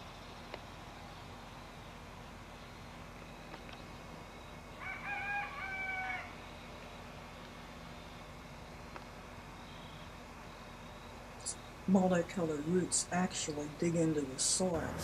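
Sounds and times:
rooster crowing: 0:04.8 - 0:06.5.

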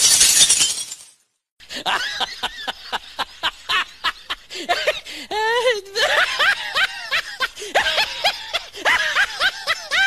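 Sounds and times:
person laughing hard: 0:01.7 - 0:10.0.

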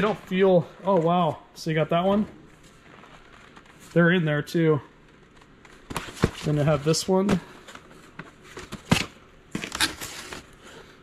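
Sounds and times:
cardboard boxes rustling and scraping: 0:05.8 - 0:10.6.

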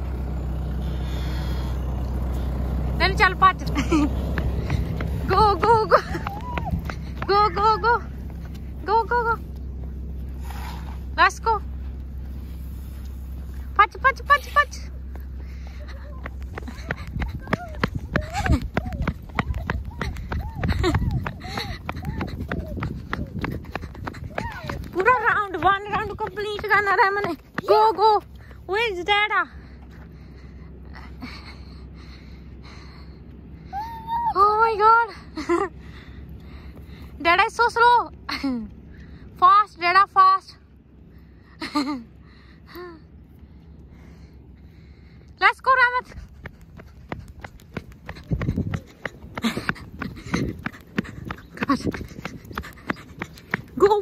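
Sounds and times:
truck engine running: 0:00.0 - 0:54.0
child calling out: 0:33.8 - 0:34.5.

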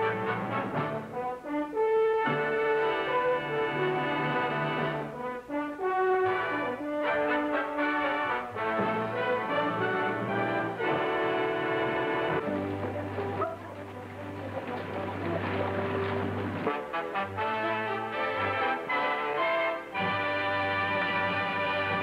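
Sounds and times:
orchestral music led by brass: 0:00.0 - 0:22.0.

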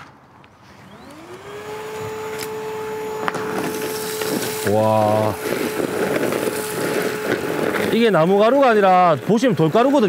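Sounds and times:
vacuum motor whine: 0:00.6 - 0:10.0
rush of air suction: 0:03.4 - 0:08.2.

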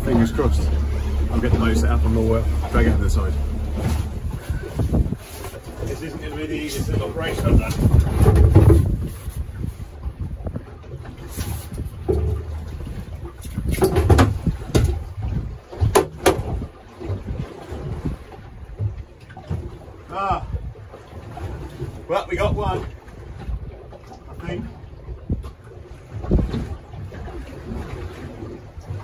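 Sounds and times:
wind buffeting microphone: 0:00.0 - 0:29.0
sharp knocks: 0:15.8 - 0:16.6.

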